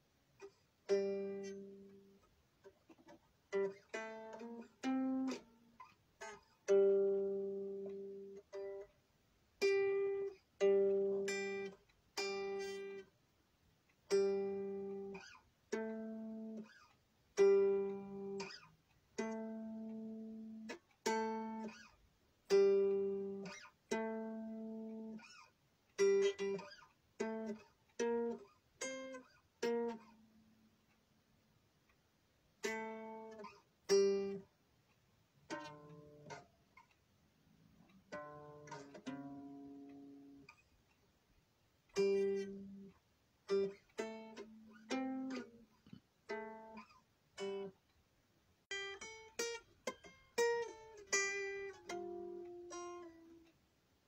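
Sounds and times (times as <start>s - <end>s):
guitar notes and chords plucked: 0.4s - 2.2s, 3.0s - 8.9s, 9.6s - 13.1s, 14.1s - 16.8s, 17.4s - 21.9s, 22.5s - 25.4s, 26.0s - 30.3s, 32.6s - 34.5s, 35.5s - 36.5s, 38.0s - 40.6s, 42.0s - 47.8s, 48.7s - 53.5s.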